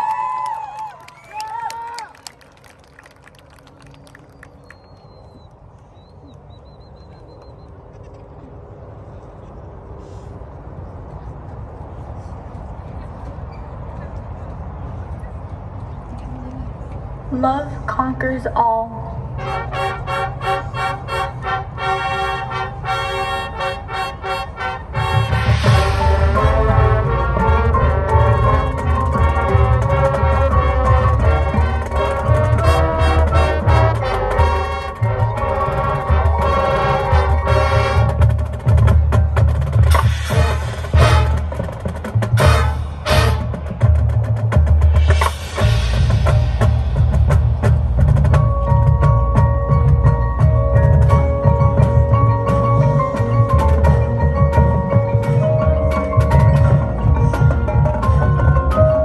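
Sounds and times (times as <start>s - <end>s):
marching band playing: 19.3s - 59.0s
heavy bass drums: 25.0s - 59.0s.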